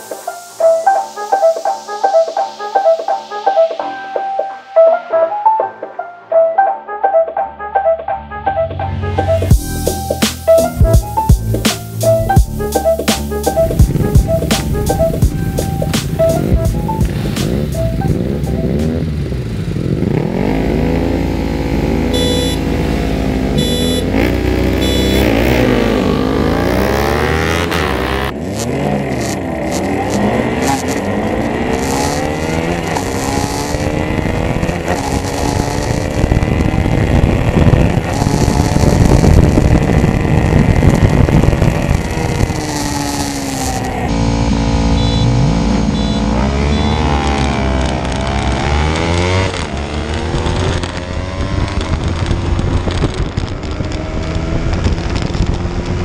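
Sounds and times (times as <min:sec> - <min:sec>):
motorcycles accelerating and revving: 0:09.2 - 0:56.0
motorcycles passing by: 0:13.6 - 0:56.0.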